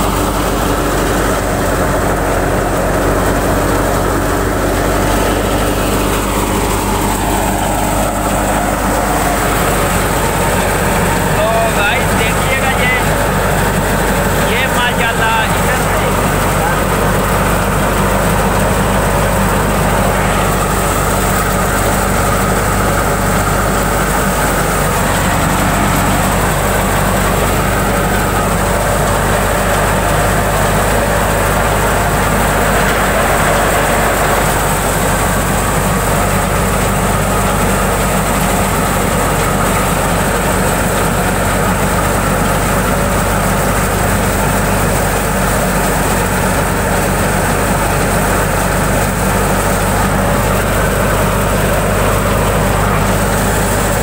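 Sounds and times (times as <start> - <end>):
thresher machine drone: 0.0 - 54.0
tractor engine hum: 0.0 - 54.0.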